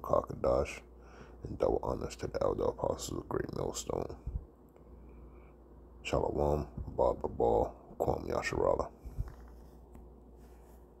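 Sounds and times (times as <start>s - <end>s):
low hum: 0.0s - 11.0s
faint rustle: 9.0s - 11.0s.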